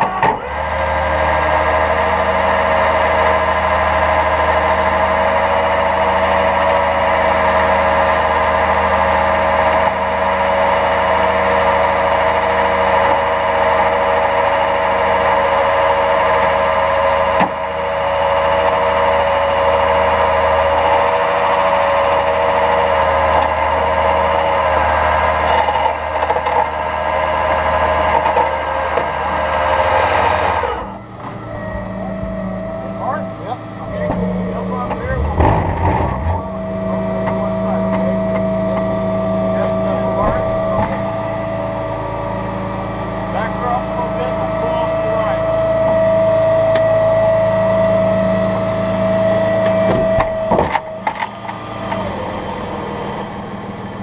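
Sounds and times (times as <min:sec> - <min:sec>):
hydraulic winch whine: 0:00.0 - 0:54.0
truck engine drone: 0:00.0 - 0:54.0.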